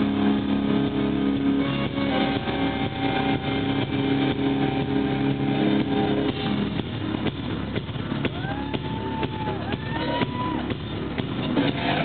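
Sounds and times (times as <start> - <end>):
metal band playing live: 0.0 - 12.0
drum hits: 0.9 - 12.0.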